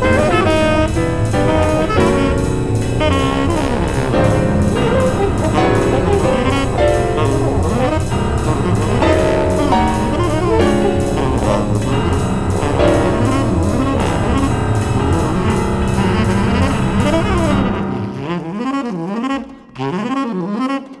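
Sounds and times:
jazz ensemble playing: 0.0s - 20.5s
saxophone sliding in pitch: 0.0s - 21.0s.

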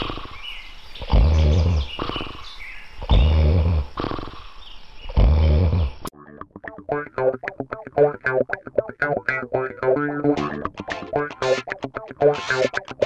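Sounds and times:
man snoring heavily: 0.0s - 0.4s, 1.1s - 2.5s, 3.1s - 4.4s, 5.2s - 6.0s.

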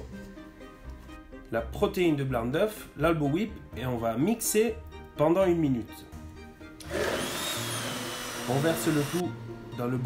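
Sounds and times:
immersion blender running: 6.8s - 9.3s.

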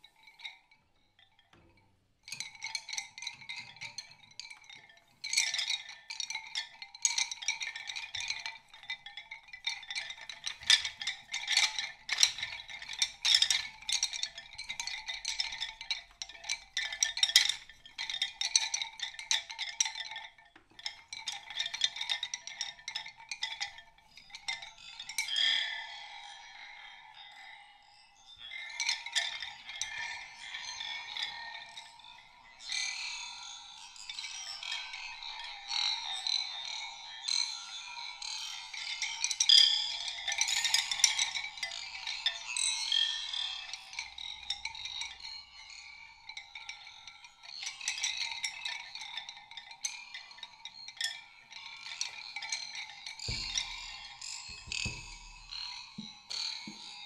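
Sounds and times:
high clicking and tinkling: 51.5s - 57.0s
low thumps: 53.2s - 56.1s.

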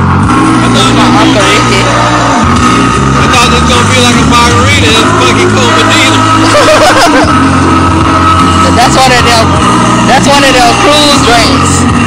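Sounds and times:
bass line: 0.0s - 12.0s.

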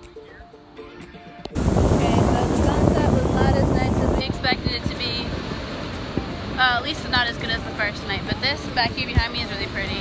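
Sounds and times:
soft background music: 0.0s - 10.0s
wind buffeting microphone: 1.6s - 10.0s.

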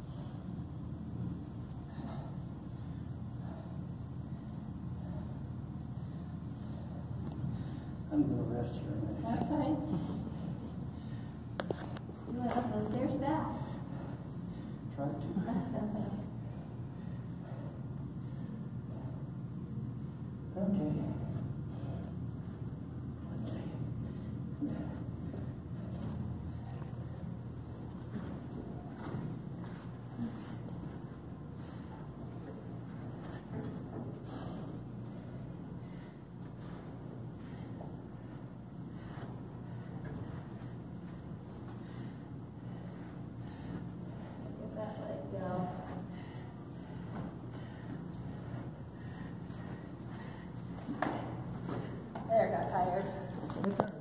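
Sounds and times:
steady low hum: 0.0s - 54.0s
footsteps on carpeted stairs: 25.3s - 34.5s, 42.7s - 53.6s.

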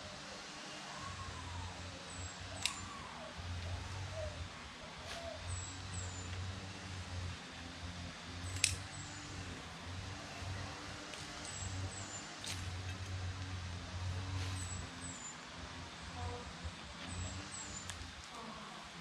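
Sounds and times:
leafy stems rustling: 2.4s - 15.2s
stems snapping: 2.6s - 3.0s, 8.5s - 8.9s, 12.4s - 13.5s, 17.8s - 18.4s.

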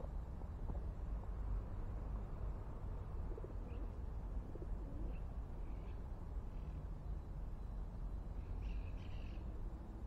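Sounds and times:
small bird chirp: 8.4s - 9.5s.

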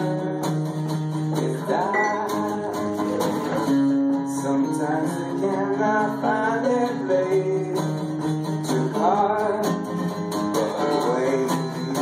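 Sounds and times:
acoustic guitars playing: 0.0s - 12.0s.

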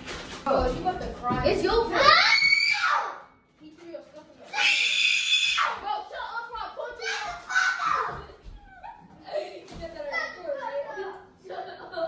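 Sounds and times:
young voices talking: 0.5s - 12.0s.

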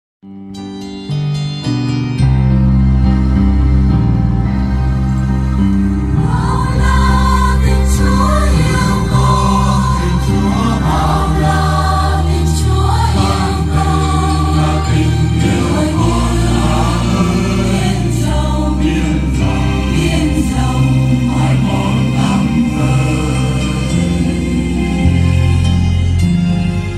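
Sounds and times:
electronic keyboard bass notes: 0.2s - 26.9s
mixed choir singing a hymn: 6.1s - 26.9s.

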